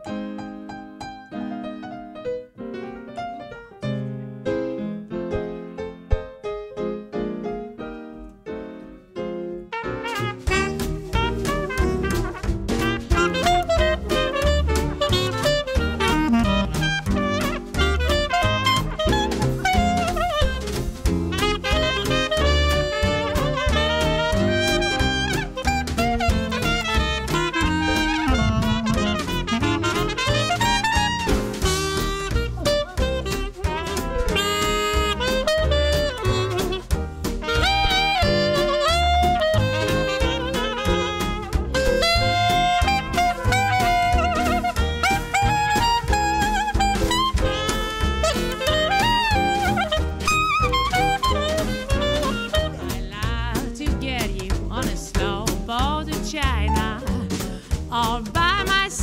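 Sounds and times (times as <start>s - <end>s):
swing jazz band playing: 9.3s - 59.0s.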